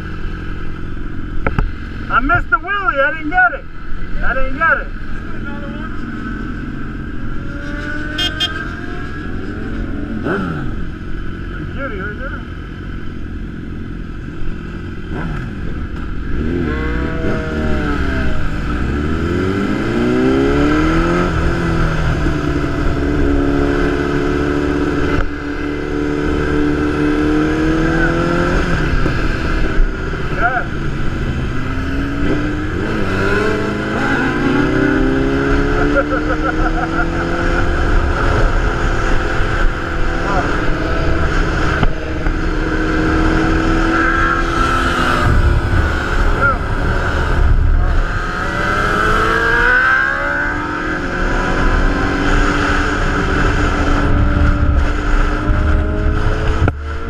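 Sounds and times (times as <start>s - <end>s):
motorcycle engine accelerating: 4.3s - 57.0s
wind noise: 15.1s - 57.0s.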